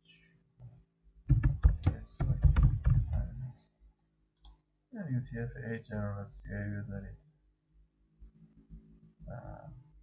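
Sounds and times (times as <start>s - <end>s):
keyboard typing: 1.3s - 3.3s.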